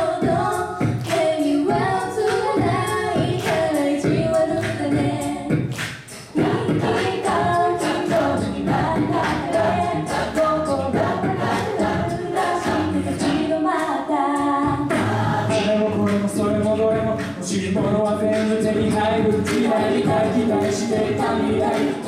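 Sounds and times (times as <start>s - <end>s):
choir singing in harmony: 6.3s - 22.0s.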